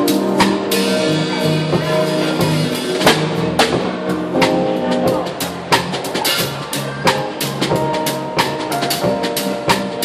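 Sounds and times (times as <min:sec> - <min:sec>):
bass: 0:00.0 - 0:10.0
keyboard chords: 0:00.0 - 0:10.0.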